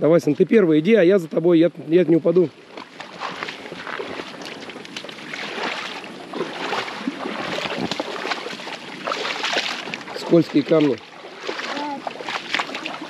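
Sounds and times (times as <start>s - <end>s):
feet wading through shallow water: 0.0s - 13.0s
inflatable boat towed through water: 0.0s - 13.0s.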